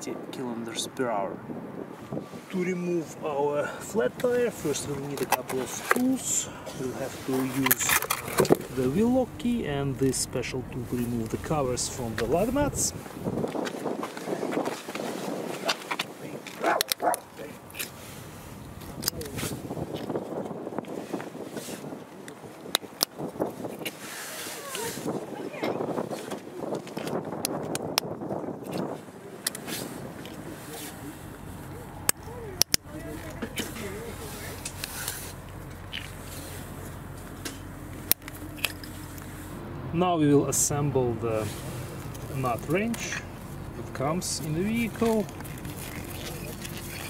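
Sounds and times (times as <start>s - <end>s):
tool handling noise: 4.7s - 10.2s.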